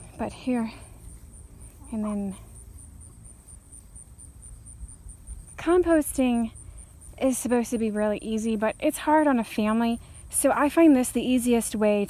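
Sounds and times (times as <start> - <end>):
insects chirring: 0.0 - 12.0.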